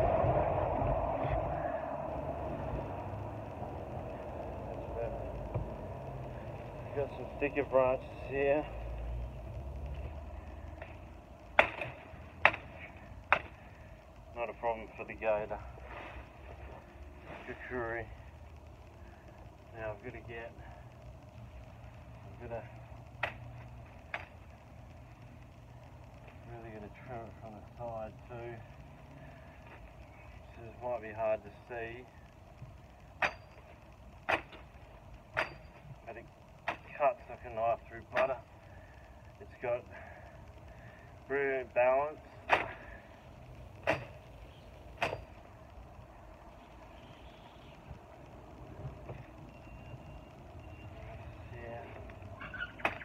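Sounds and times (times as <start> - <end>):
machete chopping branches: 11.6 - 13.6, 34.2 - 34.6, 42.4 - 42.8.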